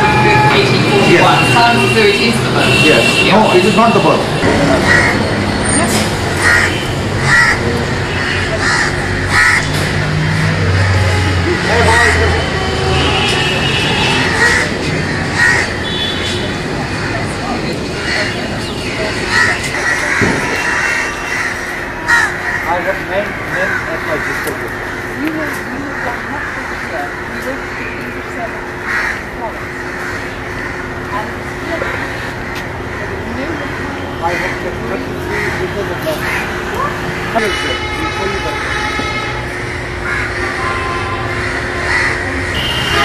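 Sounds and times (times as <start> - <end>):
outdoor background noise: 0.0 - 43.0
crows cawing: 4.6 - 5.6, 6.3 - 43.0.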